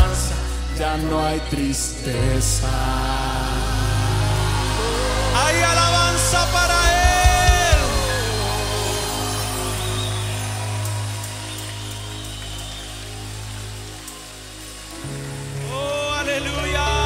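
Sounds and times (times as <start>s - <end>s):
band chord with bass: 0.0s - 17.0s
drum hits: 6.8s - 8.3s.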